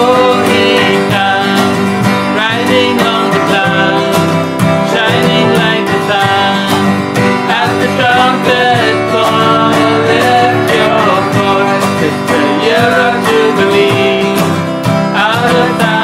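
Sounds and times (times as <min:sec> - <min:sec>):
acoustic guitar strumming: 0:00.0 - 0:16.0
men singing worship song: 0:00.0 - 0:16.0.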